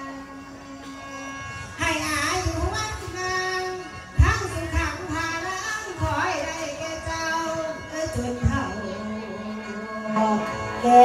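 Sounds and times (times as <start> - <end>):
woman singing into microphone: 1.8 - 11.0.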